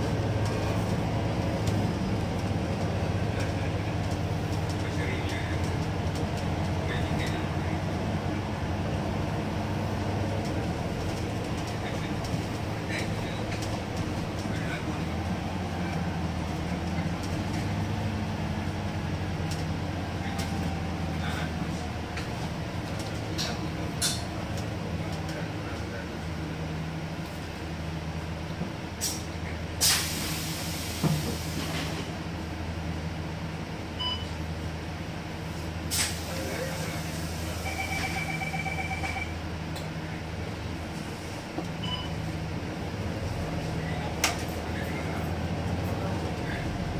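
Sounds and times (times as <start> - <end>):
bus engine and road drone: 0.0 - 46.9
rattles and clicks in cabin: 0.4 - 7.8, 10.3 - 15.2, 15.8 - 18.0, 19.4 - 20.6, 21.3 - 26.0.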